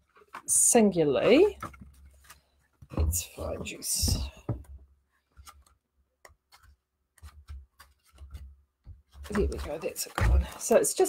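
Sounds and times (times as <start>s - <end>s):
photo books being handled: 0.0s - 11.0s.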